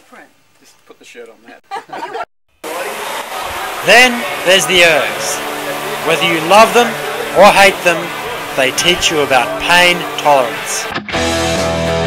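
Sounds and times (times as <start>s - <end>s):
rowing machine fans whooshing: 2.7s - 10.9s.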